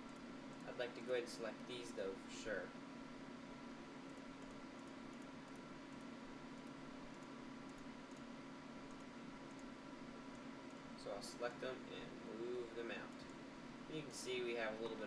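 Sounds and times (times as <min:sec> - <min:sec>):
computer mouse clicks: 0:00.0 - 0:01.2, 0:04.1 - 0:08.3, 0:08.9 - 0:09.7
low hum and hiss: 0:00.0 - 0:15.0.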